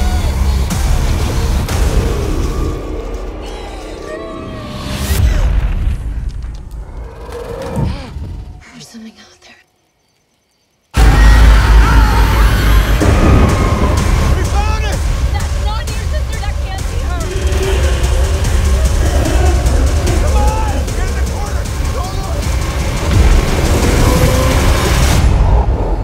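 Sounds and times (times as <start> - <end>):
frightened screams and cries: 1.8 - 5.2, 11.0 - 15.0, 16.8 - 26.0
heavy low rumble: 11.0 - 26.0.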